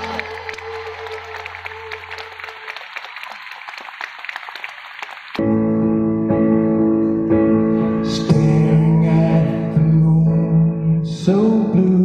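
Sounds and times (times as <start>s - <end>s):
audience clapping: 0.0s - 5.4s.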